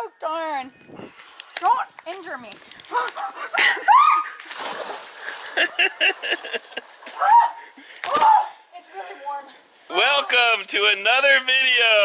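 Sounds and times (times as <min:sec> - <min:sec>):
splash of water: 0:04.4 - 0:05.8.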